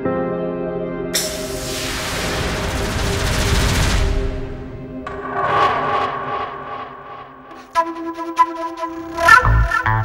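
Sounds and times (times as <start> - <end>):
whoosh: 1.2 - 7.9
held soundtrack tones: 1.2 - 10.0.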